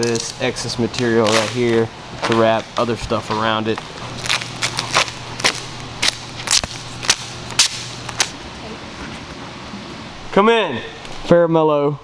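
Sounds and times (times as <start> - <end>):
vinyl film snapping and crackling: 0.0 - 8.4
low steady hum: 0.0 - 12.0.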